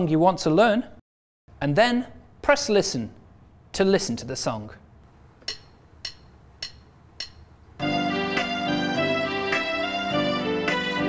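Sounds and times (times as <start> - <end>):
digital piano count-in clicks: 5.4 - 7.5.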